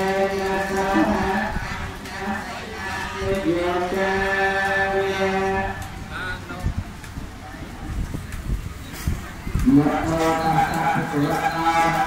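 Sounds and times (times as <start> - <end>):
person chanting: 0.0 - 6.0, 9.6 - 12.0.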